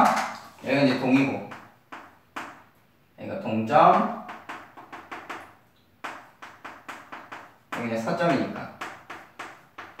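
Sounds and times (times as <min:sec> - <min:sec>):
chalk tapping on blackboard: 0:01.1 - 0:02.7, 0:03.9 - 0:10.0.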